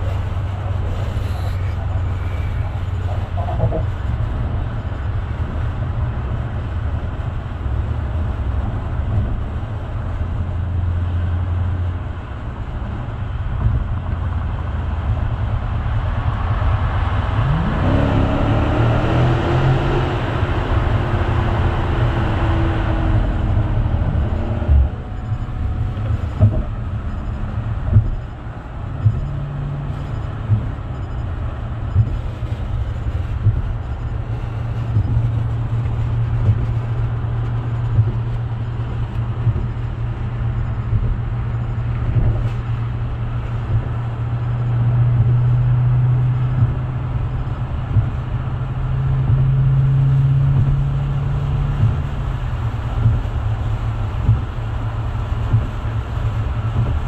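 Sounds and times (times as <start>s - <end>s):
car engine revving: 15.9s - 57.0s
short thumps: 26.0s - 27.2s, 27.8s - 31.0s.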